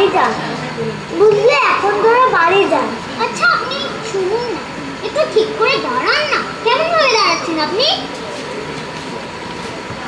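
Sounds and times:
children calling out: 1.0 - 8.4.

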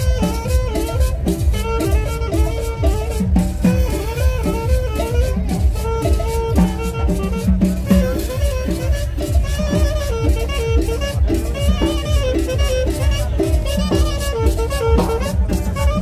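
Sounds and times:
latin dance band playing: 0.0 - 16.0.

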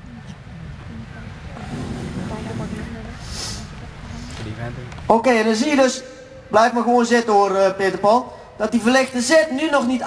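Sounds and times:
low background rumble: 0.0 - 5.0
indistinct talking: 0.0 - 6.5.

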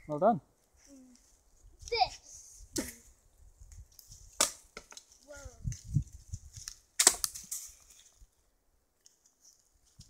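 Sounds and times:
small wood snaps: 3.7 - 5.2, 6.6 - 8.1
wooden stick cracking: 3.7 - 5.8, 6.5 - 8.2.

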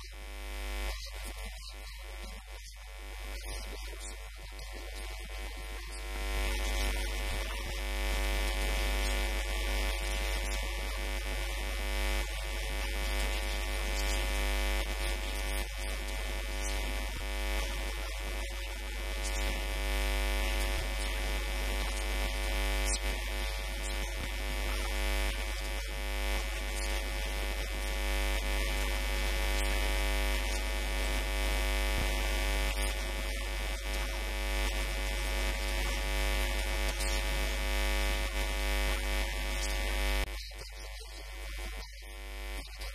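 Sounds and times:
electrical mains hum: 0.0 - 42.9.

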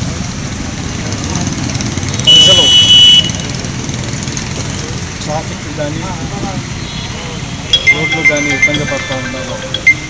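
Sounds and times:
low rumble of vehicle engines: 0.0 - 10.0
vehicle horn: 2.3 - 3.4.

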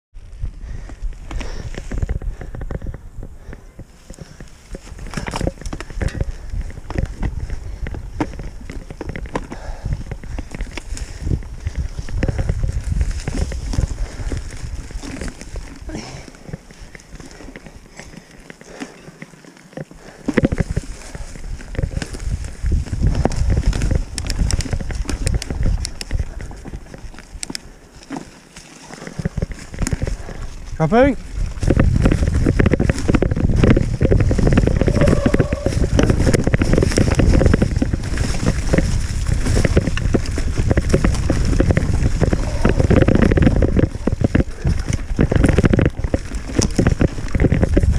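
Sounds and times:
mountain bike on dirt trail: 0.1 - 47.9.

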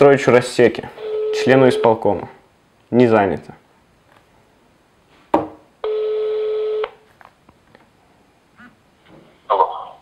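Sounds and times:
telephone ringback tone: 1.0 - 2.0, 5.8 - 7.0.

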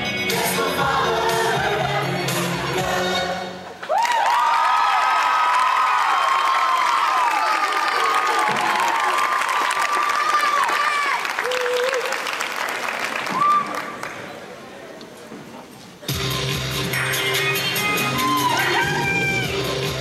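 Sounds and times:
audience whoops and shrieks: 3.8 - 12.3, 13.2 - 14.0, 17.8 - 19.9
audience clapping: 3.8 - 14.5.

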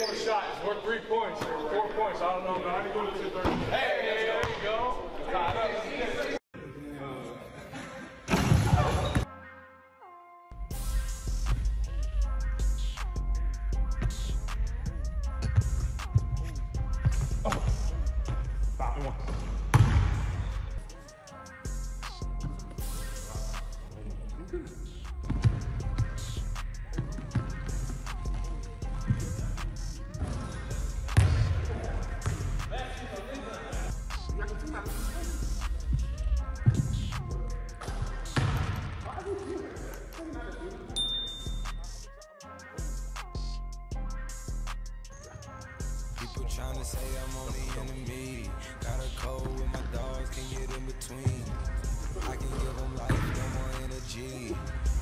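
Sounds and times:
background music with bass: 10.5 - 55.0
people's voices: 22.1 - 42.0, 46.2 - 55.0.

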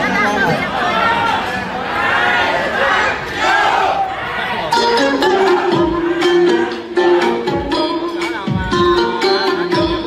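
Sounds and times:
crowd of people talking: 0.0 - 10.0
music backing track: 4.6 - 10.0.

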